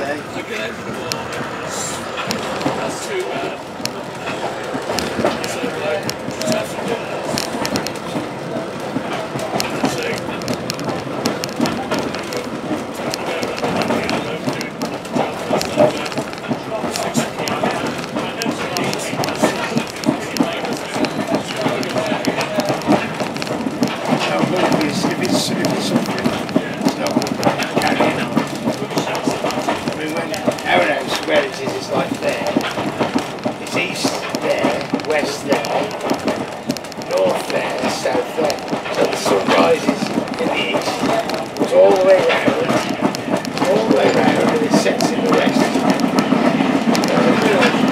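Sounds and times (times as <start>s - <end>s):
rail clicks: 0.0s - 47.9s
train wheels rumbling on track: 0.0s - 47.9s.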